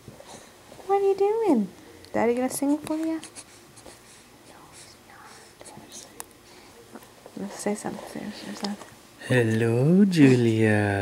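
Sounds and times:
person whispering: 4.5 - 6.2.

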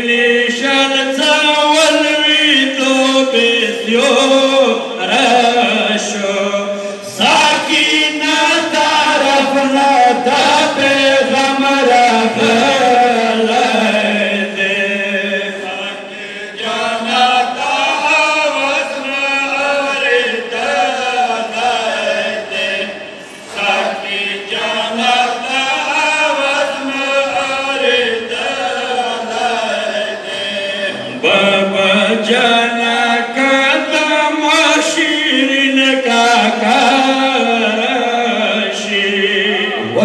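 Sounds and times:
men chanting a mourning lament: 0.0 - 40.0.

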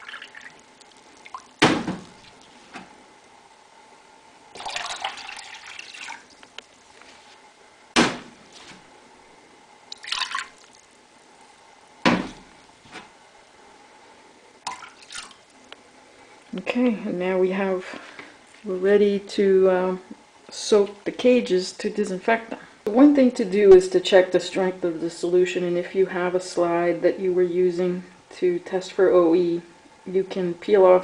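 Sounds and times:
liquid sloshing in a glass cup: 4.6 - 6.4, 9.9 - 10.9, 14.7 - 15.5.

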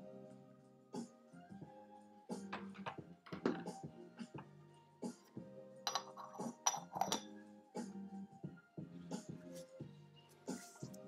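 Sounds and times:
quiet background music: 0.0 - 11.0
teaware clinking and knocking: 2.5 - 4.4, 5.8 - 7.3.

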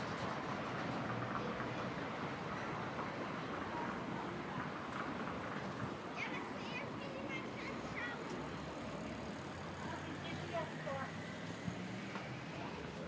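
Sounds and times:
passers-by talking: 0.1 - 13.0
vehicle engine humming past: 8.3 - 13.0.

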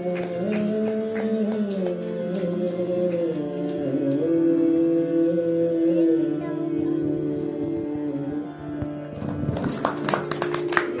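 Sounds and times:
audience applauding: 0.0 - 3.8, 9.1 - 11.0
tanpura drone: 0.0 - 11.0.

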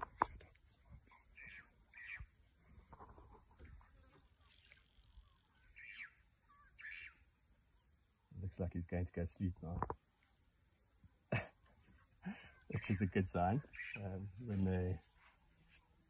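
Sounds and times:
short bird calls: 1.0 - 2.4, 4.3 - 7.5.

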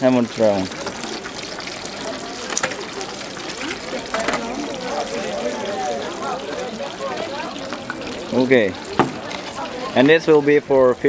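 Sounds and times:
hot oil sizzling in deep fryer: 0.0 - 11.0
indistinct voices: 0.0 - 11.0.

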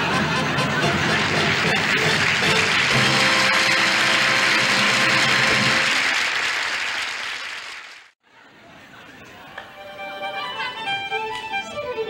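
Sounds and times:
band music playing: 0.1 - 6.2
audience applauding: 0.6 - 8.2.

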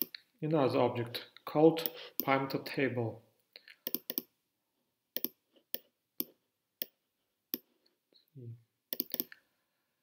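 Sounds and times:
computer mouse clicking: 3.8 - 4.3, 5.2 - 7.7, 8.9 - 9.4.

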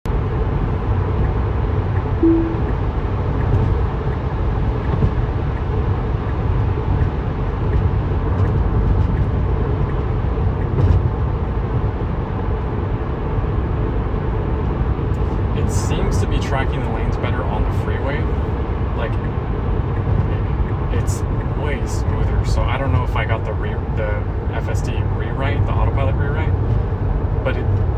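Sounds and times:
road and tyre rumble in car cabin: 0.1 - 2.2, 3.1 - 27.9
short chime: 2.2 - 2.8.

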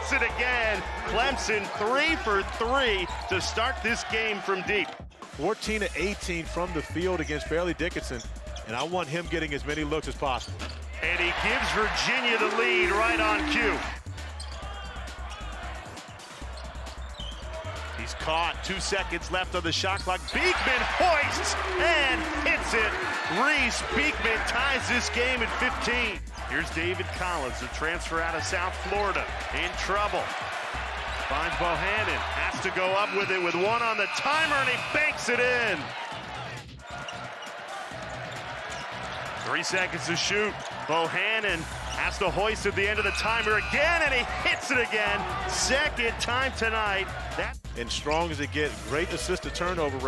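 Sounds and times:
arena crowd noise: 0.0 - 50.0
music playing: 0.0 - 50.0.

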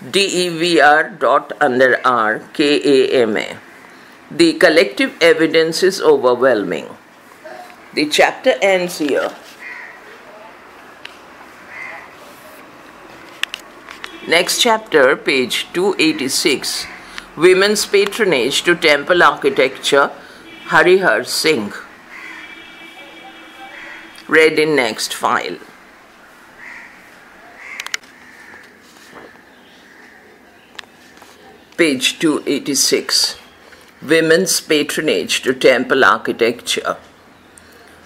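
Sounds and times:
hoarse bird calls: 9.6 - 10.1, 11.7 - 12.2, 16.8 - 17.3, 22.1 - 24.2, 26.5 - 31.7
bird calling faintly: 9.6 - 10.4, 11.7 - 12.4, 22.1 - 24.3, 26.6 - 31.7.

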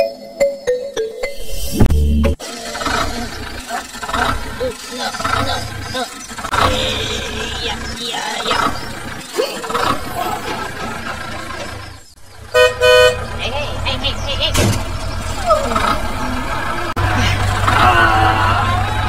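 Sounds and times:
voices: 2.4 - 19.0
horn toots: 6.5 - 7.6, 12.5 - 13.3.

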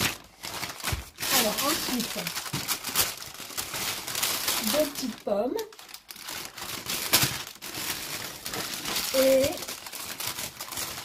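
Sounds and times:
paper bag crinkling: 0.0 - 11.0.

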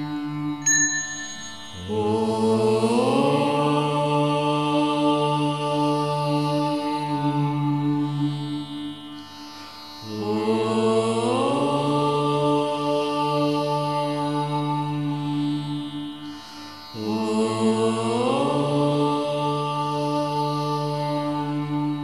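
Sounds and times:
devotional chanting music: 0.0 - 22.0.

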